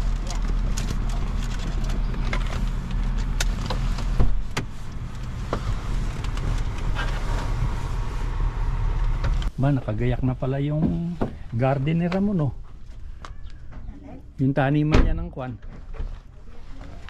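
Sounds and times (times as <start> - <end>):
car engine idling: 0.0 - 9.6.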